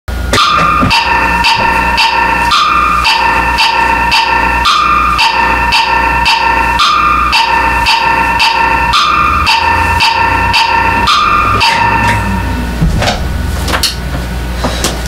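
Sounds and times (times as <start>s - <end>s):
even electronic beat: 0.4s - 14.1s
sustained synth tone: 0.4s - 14.6s
low bass: 9.0s - 14.6s.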